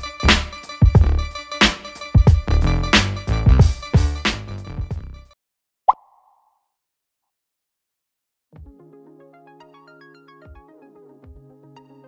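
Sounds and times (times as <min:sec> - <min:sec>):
intro music: 0:00.0 - 0:05.3
pop sound effect with ringing: 0:05.9 - 0:06.6.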